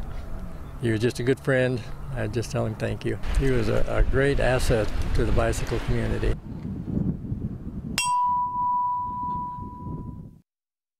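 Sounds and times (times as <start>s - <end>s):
metal bell ringing: 8.0s - 10.2s.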